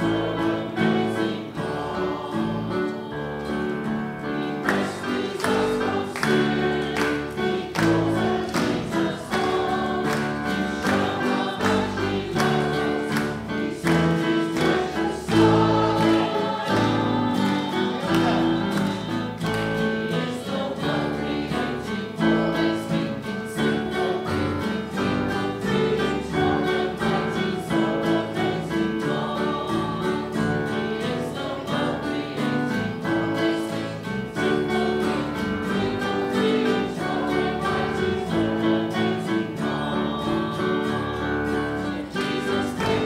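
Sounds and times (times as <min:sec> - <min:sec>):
congregation singing: 0:00.0 - 0:43.0
instrumental accompaniment: 0:00.0 - 0:43.0.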